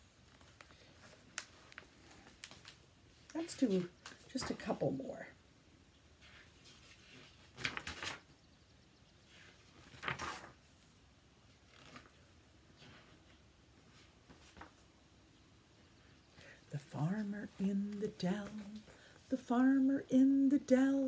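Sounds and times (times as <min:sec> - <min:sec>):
book pages turning: 0:06.2 - 0:08.3, 0:09.7 - 0:10.6, 0:11.6 - 0:13.1.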